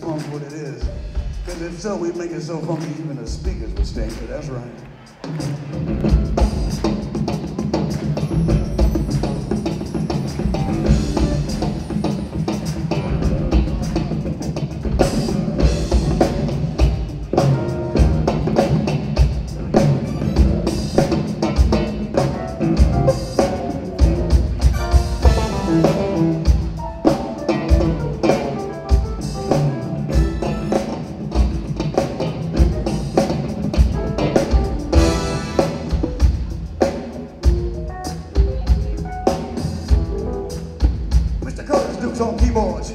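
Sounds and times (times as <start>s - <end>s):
drum kit beat: 0.0s - 42.9s
keyboards: 0.0s - 42.9s
electric bass guitar: 10.4s - 41.0s.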